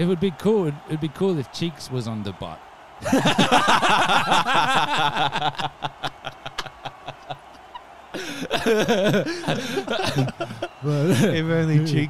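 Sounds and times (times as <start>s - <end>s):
men laughing: 3.0s - 11.6s.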